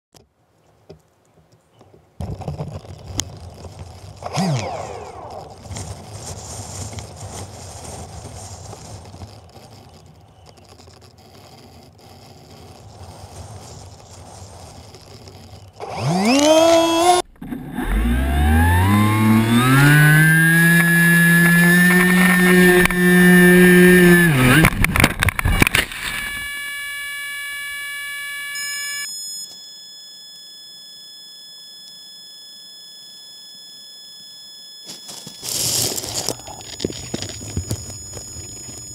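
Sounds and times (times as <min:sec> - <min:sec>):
steady high whine: 0:03.1 - 0:38.9
small engine revving: 0:04.2 - 0:07.4, 0:14.8 - 0:29.1.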